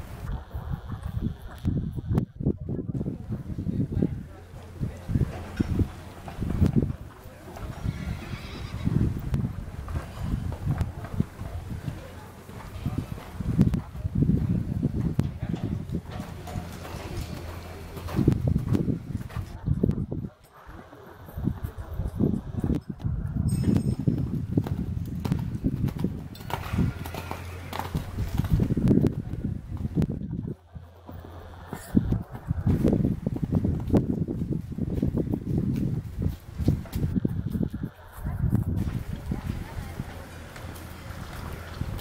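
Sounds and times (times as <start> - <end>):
hoofbeats on sand: 0.0 - 42.0.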